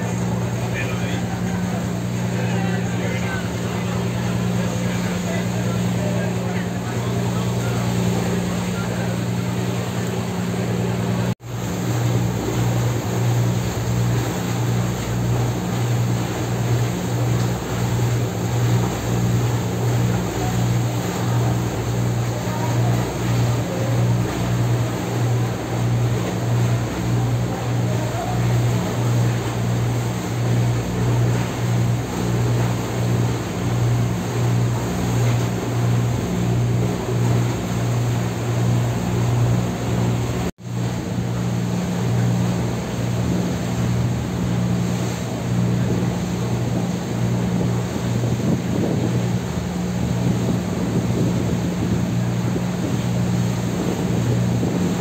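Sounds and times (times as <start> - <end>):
boat engine droning: 0.0 - 55.0
water rushing along hull: 0.0 - 55.0
wind: 0.0 - 55.0.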